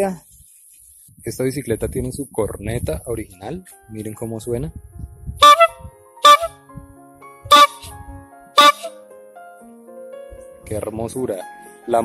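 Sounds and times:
bicycle bulb horn honking: 5.4 - 6.6, 7.5 - 8.0, 8.6 - 8.9.

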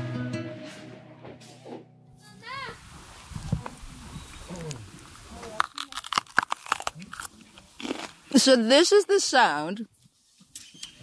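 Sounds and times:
person crunching raw pepper: 4.5 - 8.4.

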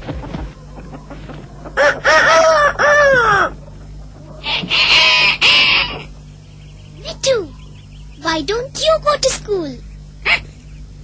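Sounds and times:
cartoon rooster crowing: 1.8 - 3.6, 4.4 - 6.1
harsh bird squawk: 4.4 - 8.6.

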